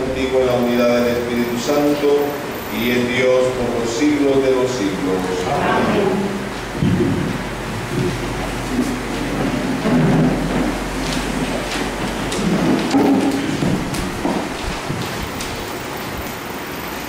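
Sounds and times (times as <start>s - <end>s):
microphone handling noise: 6.4s - 15.7s.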